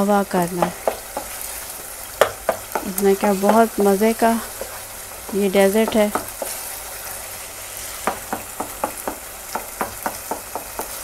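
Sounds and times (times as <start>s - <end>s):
food sizzling in a pan: 0.0s - 11.0s
wooden spoon scraping a pan: 0.6s - 11.0s.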